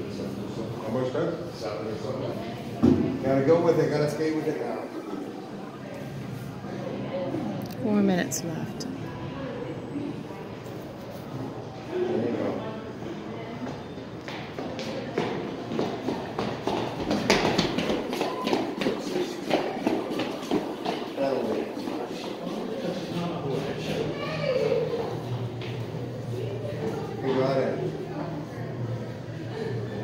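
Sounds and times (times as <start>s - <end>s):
spectators talking: 0.0s - 30.0s.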